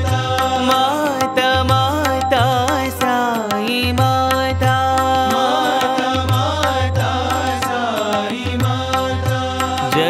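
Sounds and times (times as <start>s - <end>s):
sung devotional melody: 0.0s - 10.0s.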